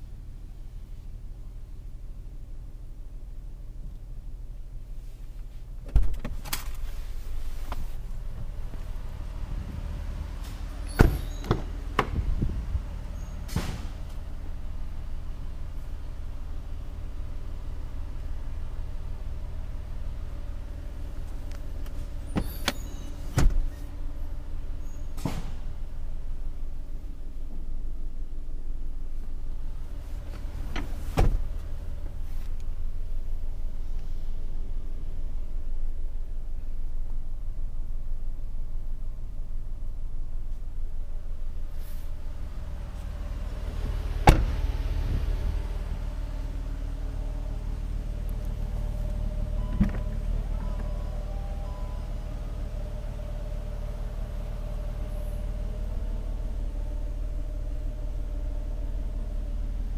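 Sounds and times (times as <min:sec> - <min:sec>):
steady low hum: 0:00.0 - 0:59.9
car door shutting with thud: 0:05.8 - 0:06.5, 0:10.4 - 0:12.8, 0:22.3 - 0:23.8, 0:30.6 - 0:31.6, 0:43.7 - 0:45.6, 0:49.6 - 0:51.0
seatback thump: 0:10.4 - 0:12.9, 0:22.3 - 0:23.8, 0:30.3 - 0:31.7, 0:43.7 - 0:45.5, 0:49.6 - 0:51.0.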